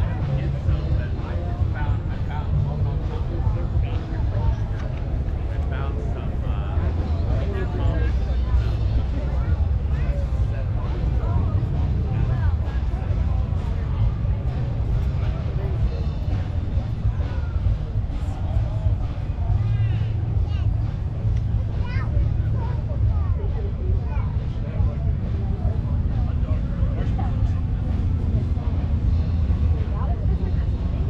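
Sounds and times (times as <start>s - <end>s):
many people talking: 0.0s - 31.0s
steady low rumble: 0.0s - 31.0s.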